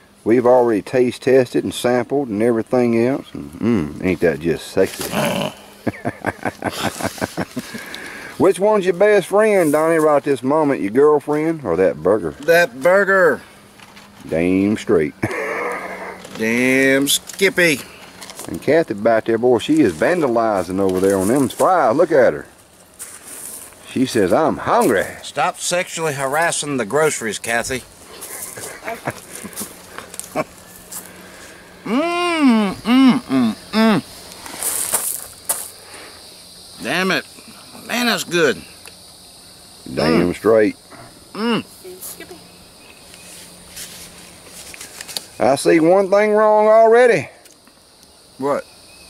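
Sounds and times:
man's gravelly chuckle: 3.4s - 4.0s, 5.1s - 8.0s, 15.2s - 16.2s, 28.1s - 29.7s, 31.8s - 34.0s.

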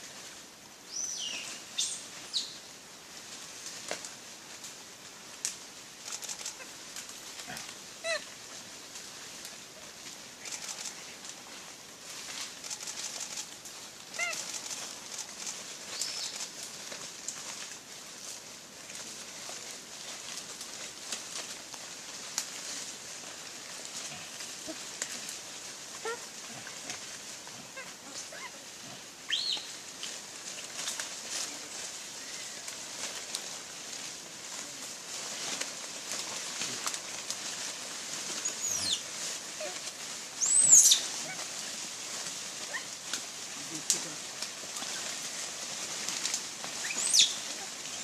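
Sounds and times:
dry leaves crackling and rustling: 0.0s - 48.0s
steady high hiss: 0.0s - 48.0s
pitched animal calls: 7.5s - 8.3s, 14.1s - 14.8s.

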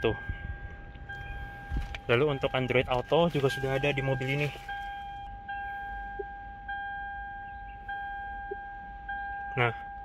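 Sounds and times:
car warning chime: 0.0s - 10.0s.

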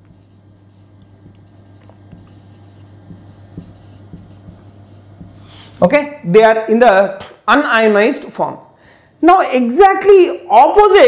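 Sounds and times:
marker scratching on whiteboard: 0.0s - 5.8s
low steady hum: 0.0s - 9.3s.

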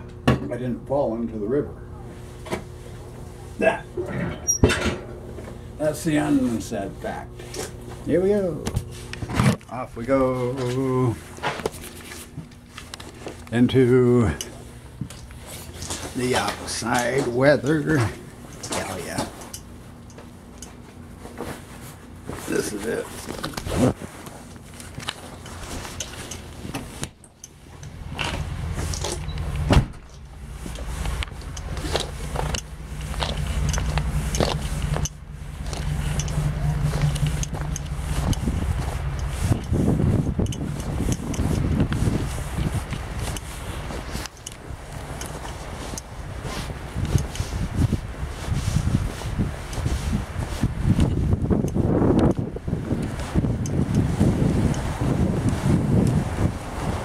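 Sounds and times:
low mechanical hum: 0.0s - 57.0s
wind noise on microphone: 28.1s - 57.0s.

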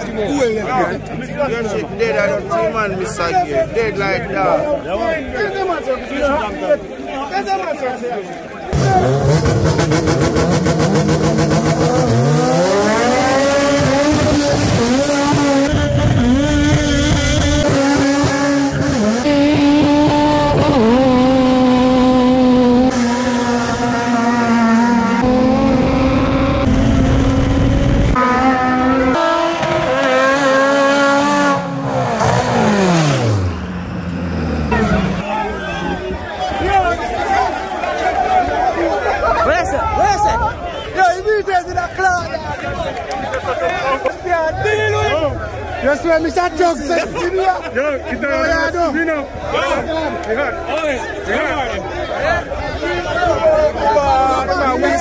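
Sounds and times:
race car engine revving: 8.7s - 35.3s.

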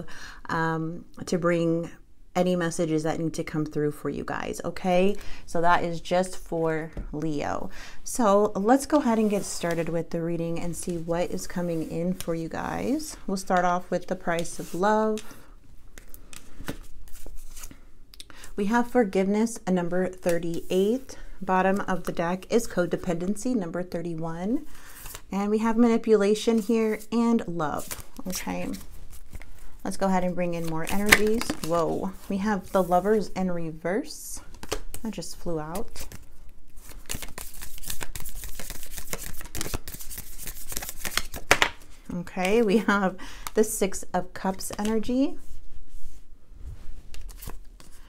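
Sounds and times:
cards being shuffled: 14.4s - 17.8s, 30.6s - 33.0s, 34.5s - 43.6s, 44.5s - 45.1s, 47.1s - 48.0s.

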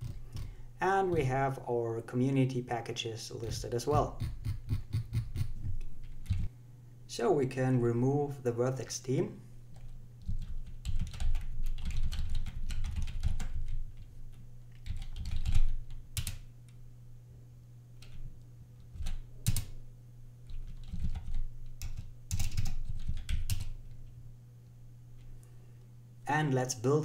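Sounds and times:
typing on computer keyboard: 9.8s - 14.1s, 14.7s - 16.4s, 18.8s - 19.7s, 20.4s - 23.8s.

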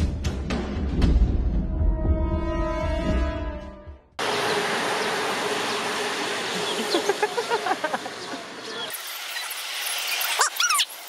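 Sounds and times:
background music: 0.0s - 4.0s.

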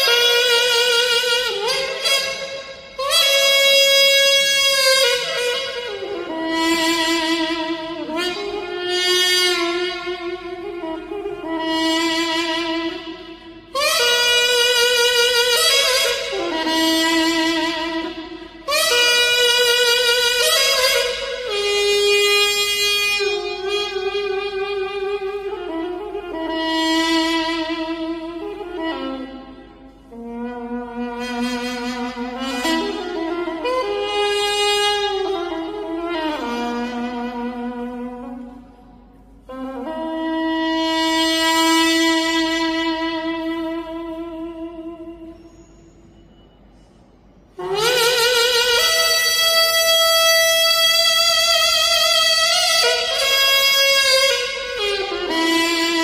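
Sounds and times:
double-reed pipe playing long notes: 0.0s - 45.8s, 47.5s - 56.0s.

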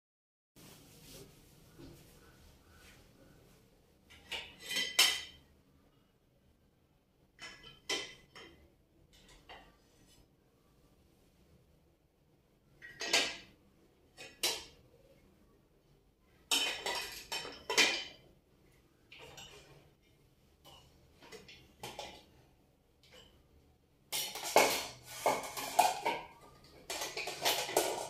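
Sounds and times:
ceramic dishes clinking: 4.1s - 5.5s, 16.4s - 18.2s
ceramic plates clinking: 4.1s - 5.5s, 7.4s - 8.6s, 12.8s - 13.5s, 16.4s - 18.2s, 24.2s - 28.0s.

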